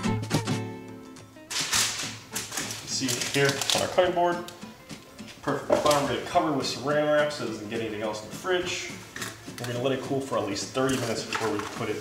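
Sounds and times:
light background music: 0.0 - 12.0
parchment paper rustling: 1.5 - 12.0.

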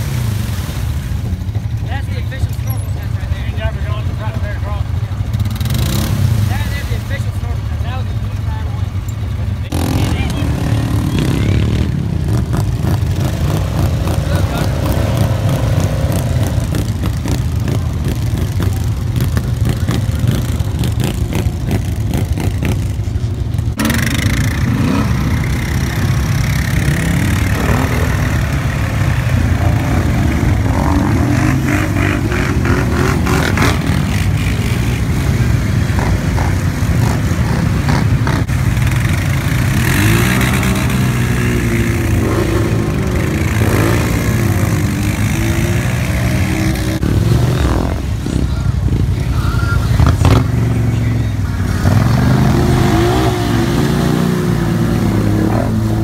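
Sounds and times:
atv engines revving: 0.0 - 56.0.

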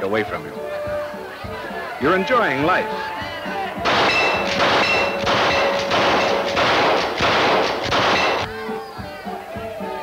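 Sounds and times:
rifle shots: 3.9 - 8.5.

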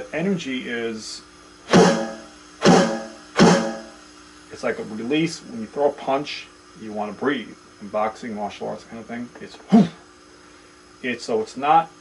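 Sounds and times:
electronic drum hits: 1.7 - 4.1.

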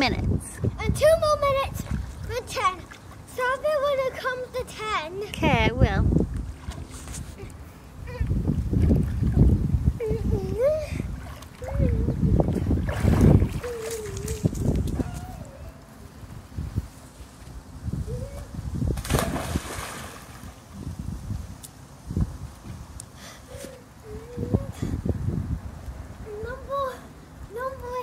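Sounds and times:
pool water splashing: 1.0 - 5.2, 10.6 - 14.6, 19.0 - 20.8
swimmer big splash: 19.0 - 20.6.

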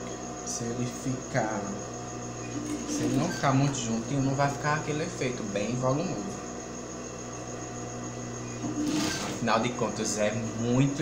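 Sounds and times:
sewing machine humming: 2.4 - 5.2, 8.4 - 11.0.

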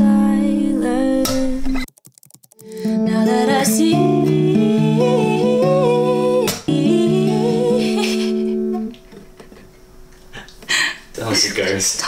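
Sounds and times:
hummed vocal melody: 0.0 - 1.8, 2.6 - 9.0
acoustic guitar strumming: 2.6 - 10.2.

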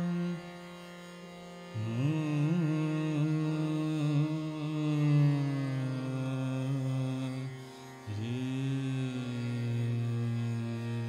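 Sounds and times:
man singing long held notes: 0.0 - 0.6, 1.7 - 11.0
harmonium: 0.0 - 11.0
tanpura drone: 0.0 - 11.0.

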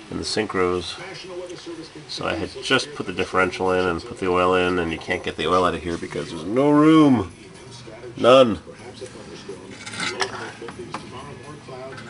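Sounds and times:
faint radio talk: 0.0 - 12.0.

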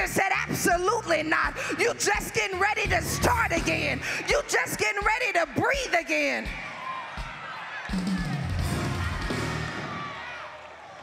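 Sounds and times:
band musical hit: 8.0 - 10.1.

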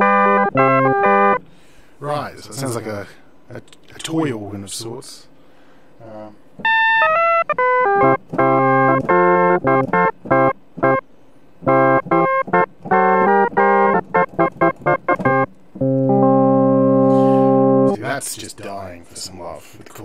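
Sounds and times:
synthesizer organ chords: 0.0 - 1.5, 6.6 - 18.1.

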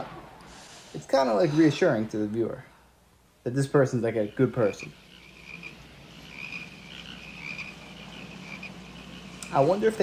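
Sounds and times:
faint low hum: 0.0 - 10.0
frogs and insects chirping: 3.5 - 10.0.

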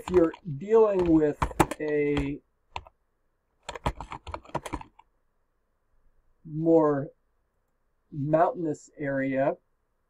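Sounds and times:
typing on computer keyboard: 0.0 - 2.9, 3.6 - 5.1.

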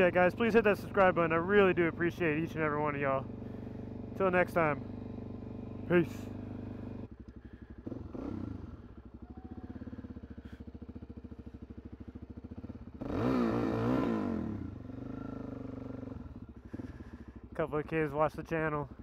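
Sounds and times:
motorcycle engine idling and revving: 0.0 - 19.0.

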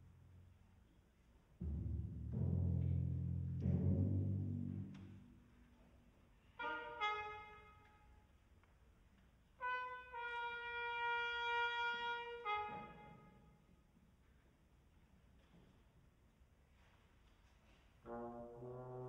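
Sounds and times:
timpani rumble: 1.6 - 5.6
brass notes: 6.5 - 8.0, 9.6 - 13.4, 18.0 - 19.0.

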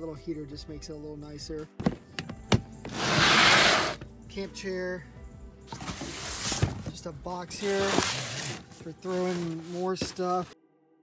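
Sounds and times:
plastic tote knocking shut: 1.8 - 3.2, 5.7 - 7.0
plastic tote scraping: 2.8 - 4.0, 5.7 - 10.6.

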